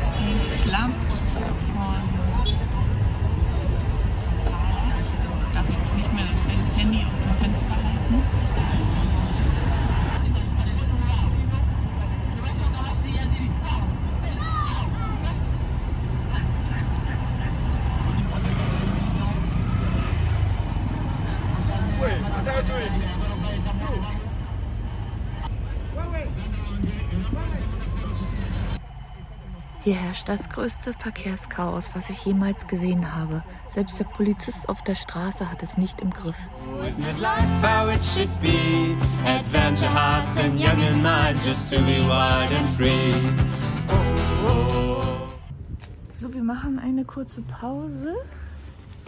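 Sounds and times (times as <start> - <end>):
indistinct voices: 0.0 - 45.5
street babble: 0.0 - 49.0.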